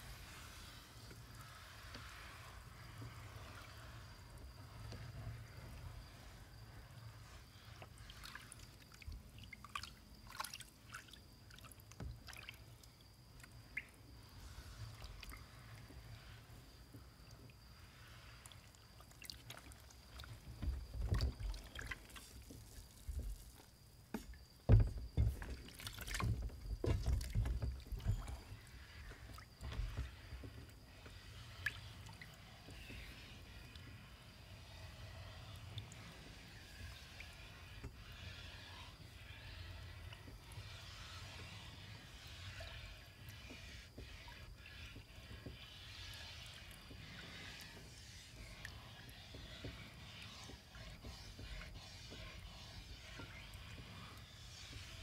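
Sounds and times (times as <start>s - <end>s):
liquid sloshing and dripping: 7.8s - 14.0s, 18.4s - 23.7s, 24.8s - 30.5s
rag wiping steel plate: 28.2s - 55.0s.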